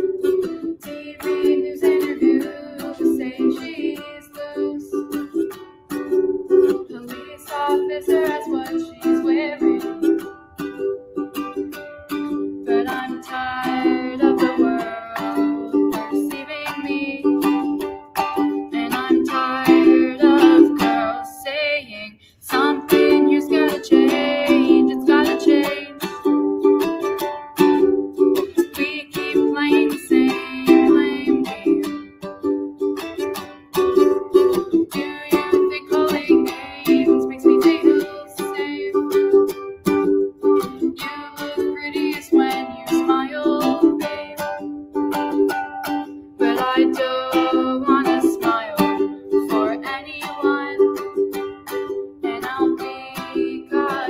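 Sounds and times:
ukulele strumming: 0:00.0 - 0:54.0
young woman singing: 0:00.2 - 0:10.8, 0:12.5 - 0:26.6, 0:28.4 - 0:32.4, 0:34.0 - 0:45.3, 0:46.0 - 0:54.0.

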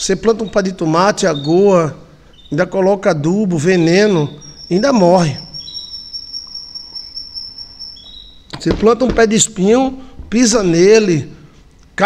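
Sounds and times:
high-pitched insect trilling: 0:03.6 - 0:09.1.

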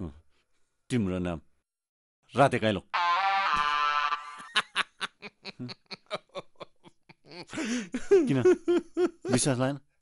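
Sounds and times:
man snickering: 0:03.2 - 0:09.3.

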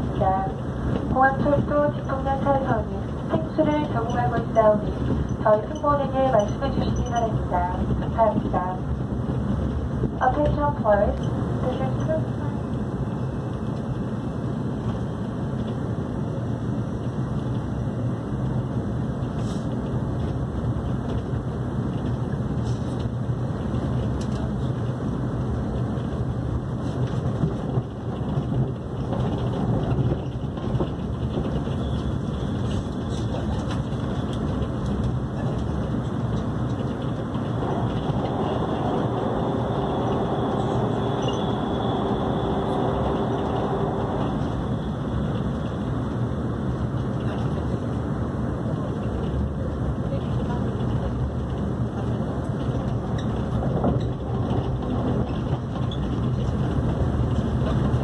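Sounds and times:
train wheels rumbling on track: 0:00.0 - 0:58.0.

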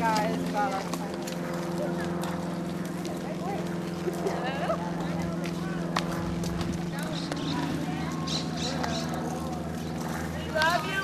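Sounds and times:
faint voices: 0:00.0 - 0:11.0
hooves knocking on dirt: 0:00.0 - 0:11.0
steady low hum: 0:00.0 - 0:11.0.

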